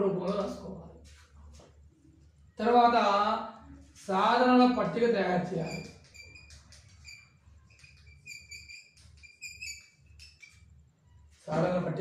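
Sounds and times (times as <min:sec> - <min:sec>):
faint bird chirping: 0:05.4 - 0:11.4.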